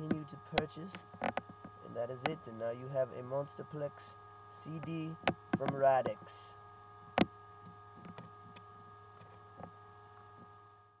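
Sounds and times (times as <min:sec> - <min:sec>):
electrical mains hum: 0:00.0 - 0:11.0
faint whining tones: 0:00.0 - 0:11.0
faint clicks and knocks: 0:00.9 - 0:02.4, 0:05.2 - 0:06.2, 0:07.1 - 0:09.8.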